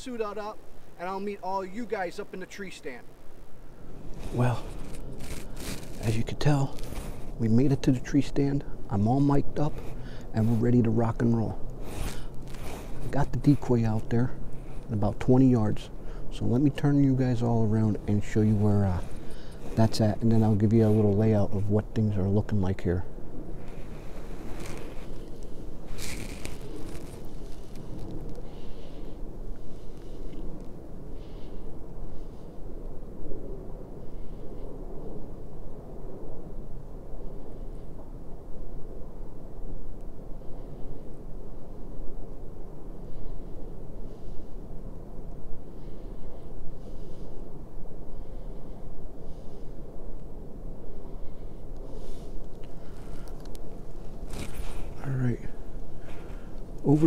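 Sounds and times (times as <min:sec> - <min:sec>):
short rustles: 0:04.0 - 0:07.4, 0:23.6 - 0:29.1, 0:51.9 - 0:57.0.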